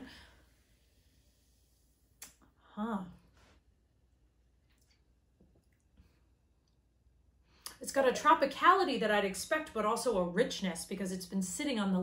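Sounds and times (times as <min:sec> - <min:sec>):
woman speaking: 0:07.7 - 0:12.0.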